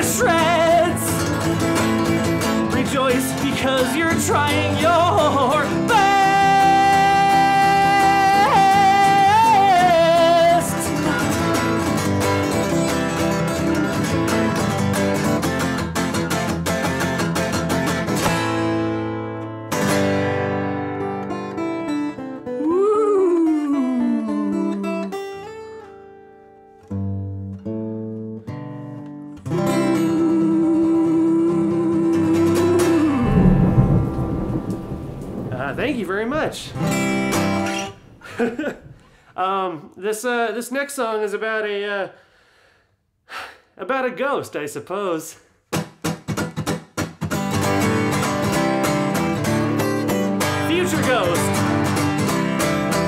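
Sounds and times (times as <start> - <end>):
acoustic guitar playing: 0.0 - 39.2, 45.7 - 53.0.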